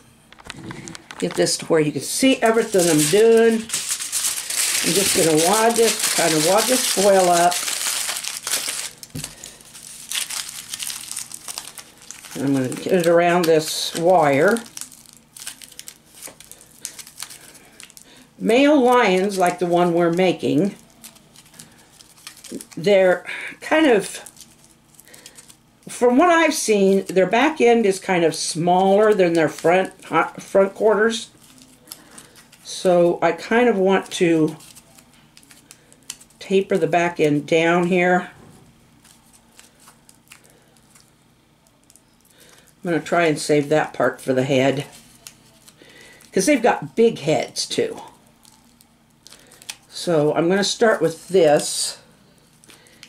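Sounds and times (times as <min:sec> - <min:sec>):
aluminium foil crinkling: 0:00.4 - 0:38.2, 0:39.0 - 0:46.9, 0:47.8 - 0:53.0.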